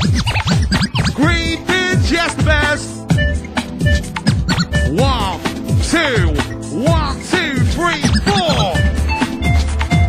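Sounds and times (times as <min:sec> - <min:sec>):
record scratching: 0:00.0 - 0:05.4, 0:06.0 - 0:08.9
rave music: 0:00.0 - 0:10.0
held synth tone: 0:03.1 - 0:05.0.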